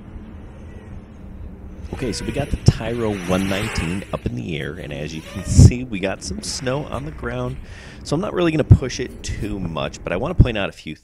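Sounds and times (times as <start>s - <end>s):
quadcopter drone buzzing: 1.8s - 4.3s.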